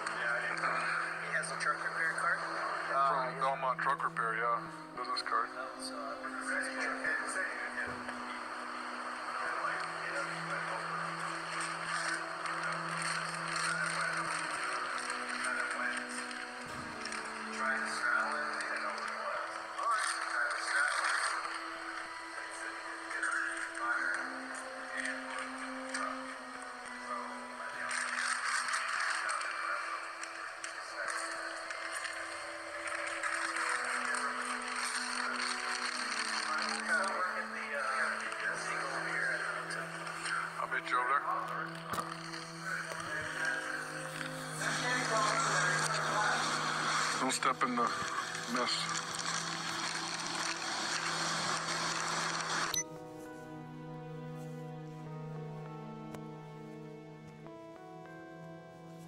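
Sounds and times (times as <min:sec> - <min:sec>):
slow music with low held notes: 0:00.0 - 0:59.0.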